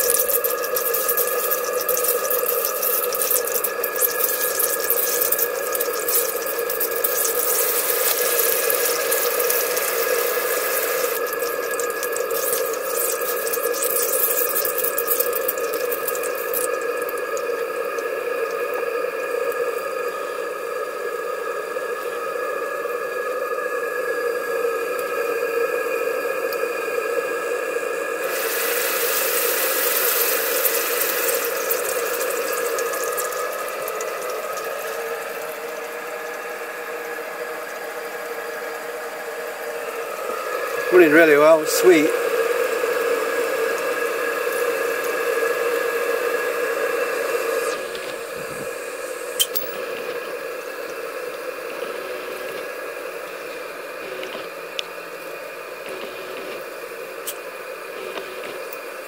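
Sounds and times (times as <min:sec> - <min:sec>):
steady humming tone: 0:00.0 - 0:59.0
steam boiler hissing: 0:00.0 - 0:59.0.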